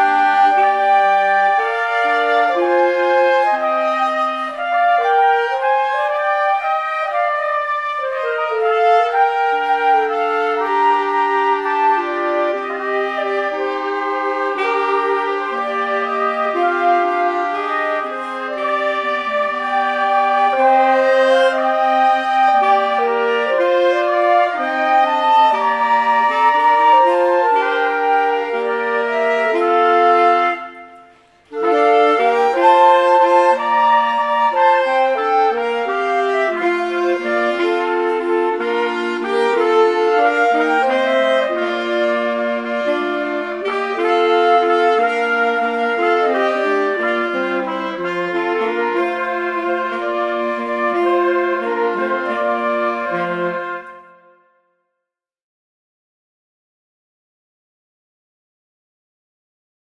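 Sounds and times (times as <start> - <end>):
small wind ensemble playing melody: 0.0 - 54.5.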